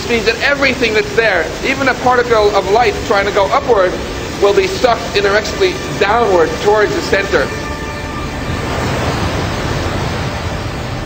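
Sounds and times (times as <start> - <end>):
falling water rushing: 0.0 - 11.0
low hum: 0.0 - 11.0.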